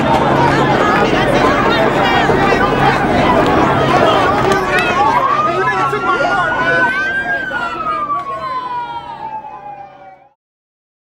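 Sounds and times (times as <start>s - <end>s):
emergency siren wailing: 0.0s - 10.4s.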